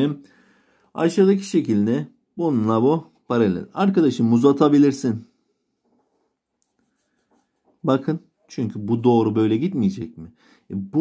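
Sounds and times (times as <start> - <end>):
man speaking: 0.0 - 0.3, 1.0 - 5.3, 7.8 - 11.0
marker drawing on paper: 5.9 - 7.9.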